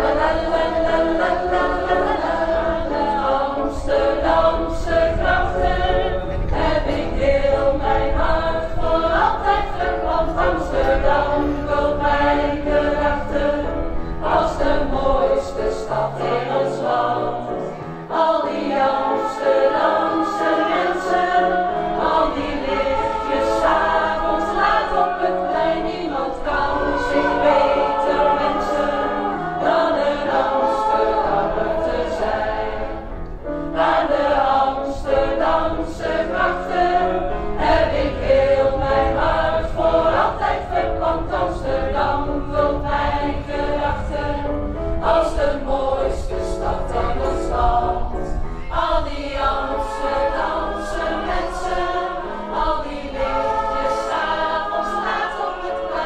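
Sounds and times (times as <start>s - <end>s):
choir singing: 0.0s - 56.0s
keyboard accompaniment: 0.0s - 56.0s.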